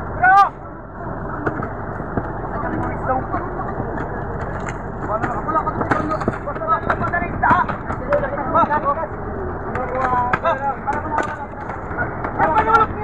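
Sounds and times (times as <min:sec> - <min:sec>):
boat engine running: 0:00.0 - 0:13.0
voices: 0:00.0 - 0:13.0.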